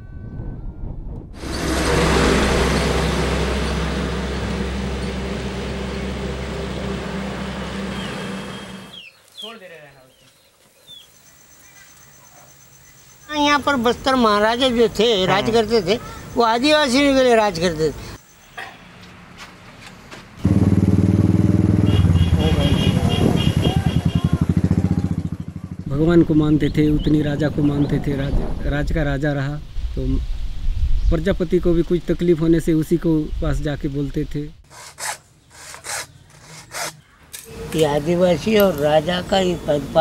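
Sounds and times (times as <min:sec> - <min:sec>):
diesel truck engine rumbling: 0:01.3 - 0:09.0
people's voices: 0:22.4 - 0:28.9.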